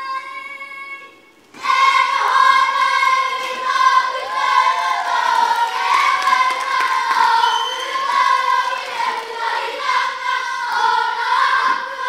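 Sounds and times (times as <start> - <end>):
children singing in unison: 1.5 - 12.0.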